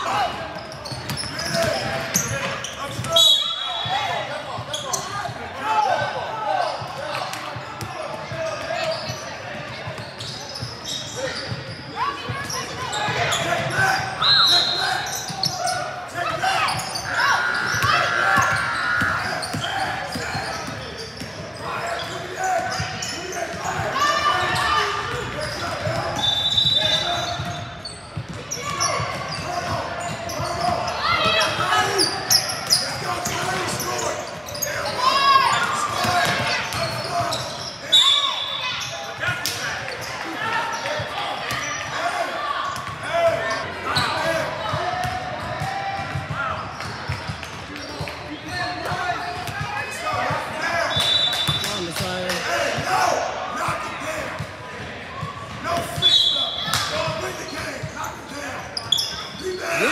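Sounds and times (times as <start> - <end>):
people calling out: 59.4 - 59.9.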